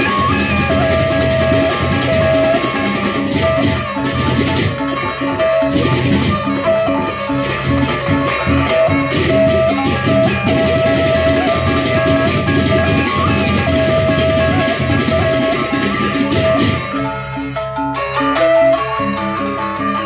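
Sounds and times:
drums: 0:00.0 - 0:17.6.

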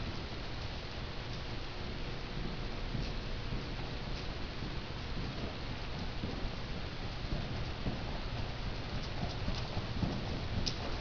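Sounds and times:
horse hoofbeats on soft footing: 0:02.3 - 0:11.0.

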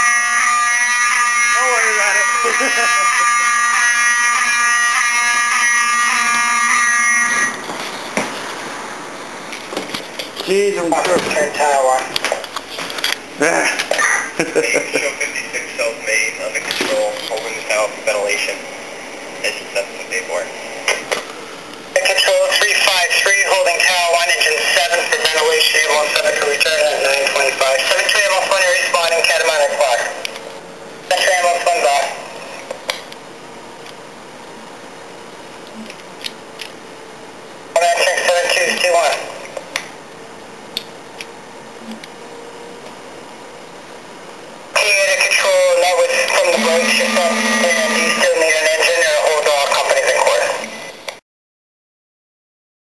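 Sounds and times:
radio voice transmissions: 0:46.4 - 0:48.6.

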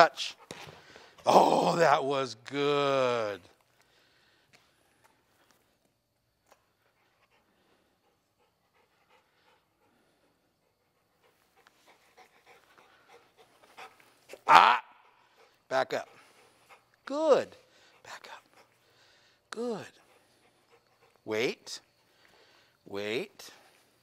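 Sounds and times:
dog panting faintly: 0:00.1 - 0:01.2, 0:06.5 - 0:22.8
short loud vocal calls: 0:14.3 - 0:15.0.

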